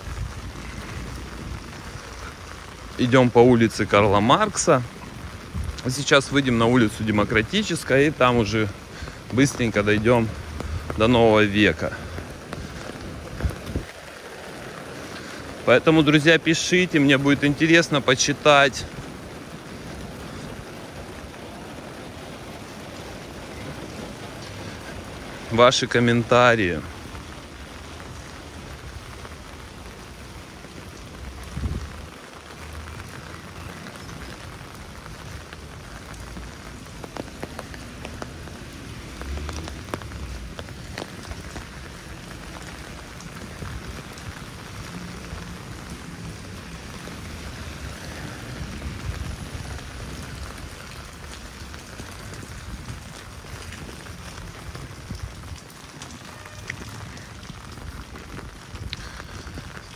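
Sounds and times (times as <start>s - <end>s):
rain on wet paving: 0.0s - 59.9s.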